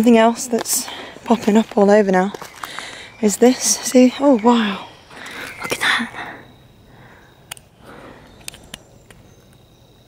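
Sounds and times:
footsteps on dry twigs: 0:00.0 - 0:05.8
faint steady high tone: 0:00.0 - 0:10.0.

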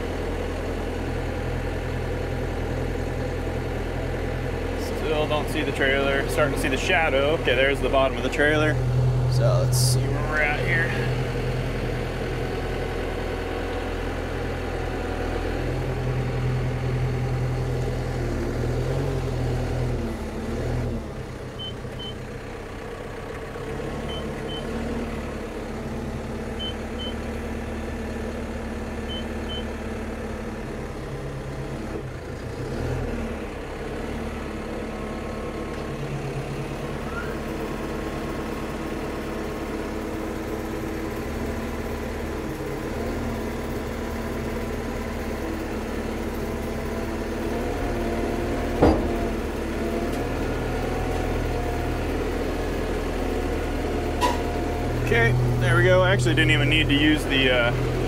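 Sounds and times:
bulldozer diesel engine running: 0:00.0 - 0:58.0
backup alarm beeping: 0:26.6 - 0:27.2
sharp metallic clunk: 0:48.8 - 0:49.3.

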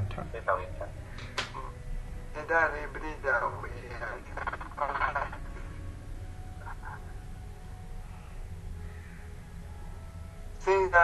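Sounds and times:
low hum: 0:00.0 - 0:10.7.

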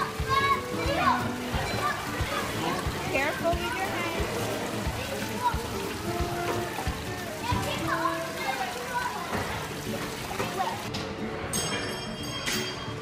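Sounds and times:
children's voices: 0:00.0 - 0:10.9
music: 0:00.0 - 0:13.0
water splashing and sloshing: 0:00.0 - 0:13.0.

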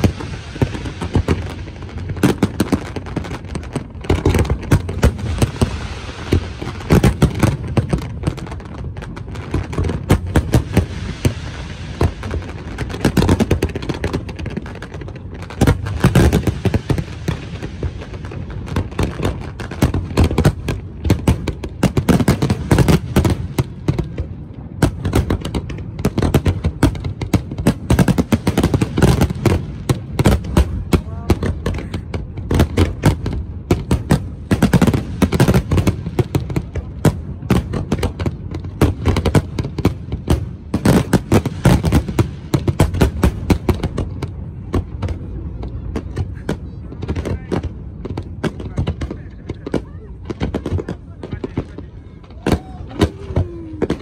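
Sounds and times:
fireworks bursting and crackling: 0:00.0 - 0:54.0.

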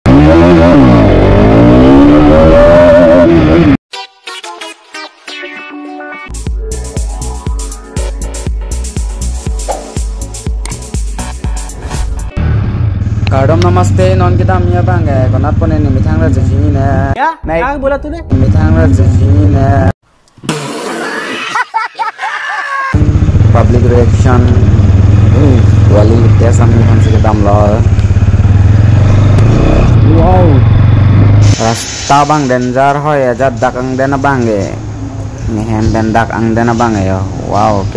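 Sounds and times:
motorcycle engine revving: 0:00.0 - 0:03.8, 0:12.3 - 0:17.2, 0:23.0 - 0:31.6.

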